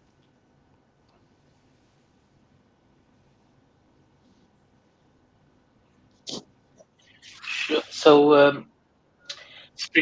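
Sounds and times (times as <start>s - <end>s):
person speaking: 7.2s - 8.6s, 9.3s - 10.0s
breath into a microphone: 9.3s - 9.8s.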